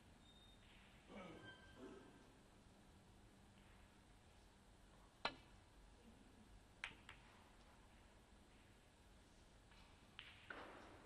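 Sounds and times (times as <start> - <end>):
balls colliding click: 6.8 - 7.7, 9.7 - 11.0.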